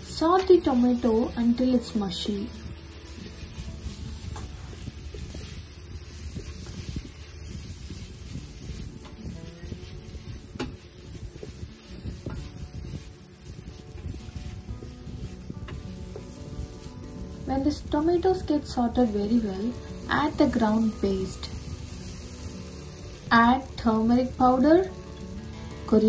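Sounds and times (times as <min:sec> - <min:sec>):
onion and tomato sizzling: 0:00.0 - 0:26.0
soft background music: 0:00.0 - 0:26.0.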